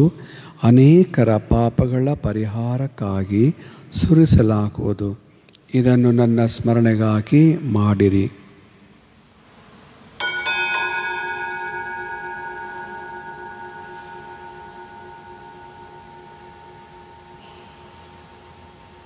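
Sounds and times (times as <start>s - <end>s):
metal altar bell ringing: 10.2s - 19.0s.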